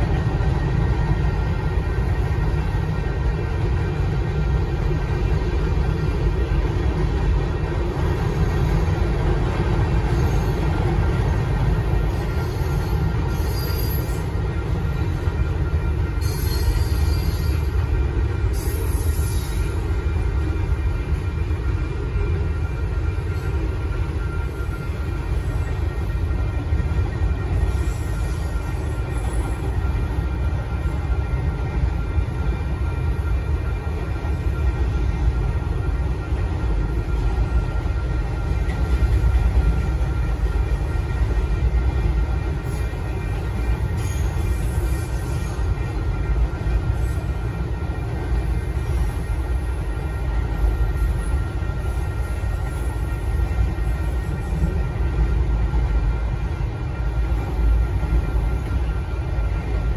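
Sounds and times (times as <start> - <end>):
train cars rumbling over rails: 0.0 - 59.9
wheels squealing on rail: 5.2 - 59.9.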